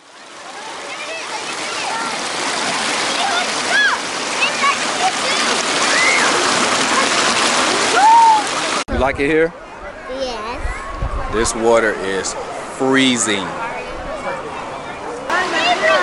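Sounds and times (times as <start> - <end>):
creek water rushing over rocks: 0.0 - 8.9, 11.7 - 16.0.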